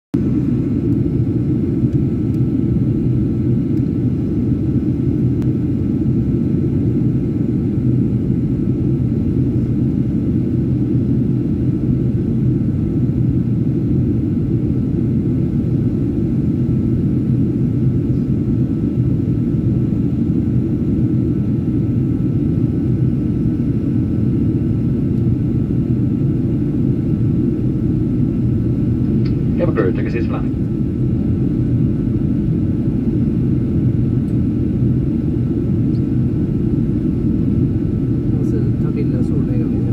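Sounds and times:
faint steady whine: 0.2s - 39.9s
jet engine and airflow cabin noise: 0.2s - 39.9s.

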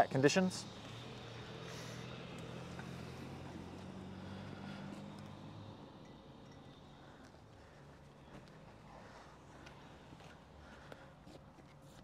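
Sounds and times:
faint low vehicle engine hum: 0.0s - 12.0s.

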